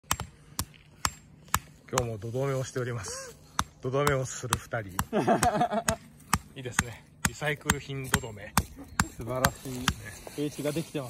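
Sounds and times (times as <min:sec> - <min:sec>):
hammer knocking wooden stakes: 0:00.0 - 0:02.2, 0:03.5 - 0:10.2.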